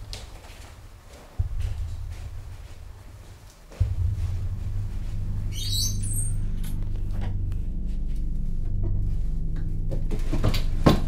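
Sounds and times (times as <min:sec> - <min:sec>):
low steady drone: 0:01.4 - 0:11.0
high-pitched squeaking: 0:05.4 - 0:07.0.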